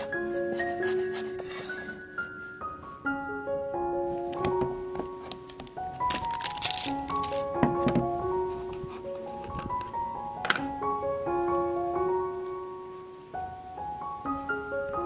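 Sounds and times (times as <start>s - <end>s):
plinking piano melody: 0.0s - 15.0s
plastic wrap crinkling: 4.3s - 9.7s
scissors cutting plastic: 4.4s - 7.8s.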